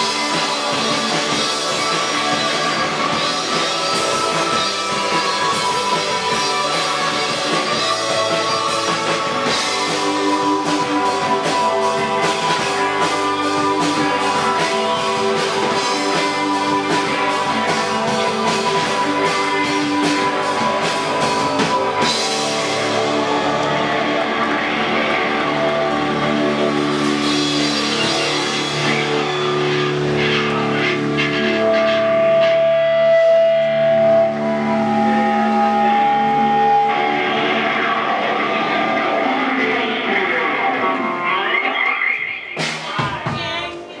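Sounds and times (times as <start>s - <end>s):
live rock band playing chords: 0.0s - 44.0s.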